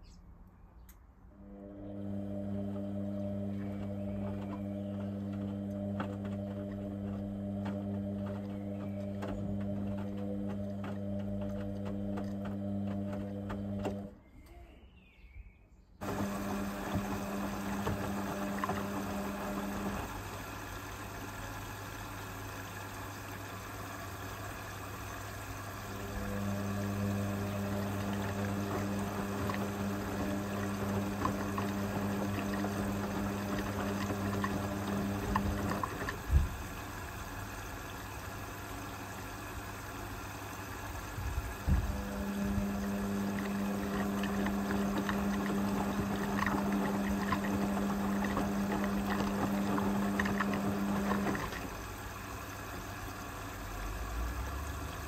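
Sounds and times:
washing machine motor humming: 0:01.3 - 0:14.2, 0:16.0 - 0:55.0
water sloshing: 0:26.5 - 0:36.9, 0:41.6 - 0:51.9.

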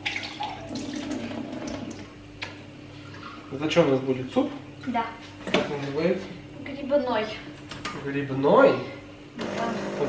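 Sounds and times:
tap water running into a glass: 0:00.0 - 0:02.1
steady low hum: 0:00.0 - 0:10.0.

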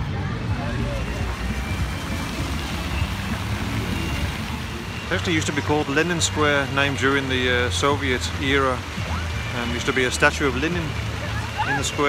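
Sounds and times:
road traffic rumble: 0:00.0 - 0:12.0
people talking: 0:05.1 - 0:12.0.

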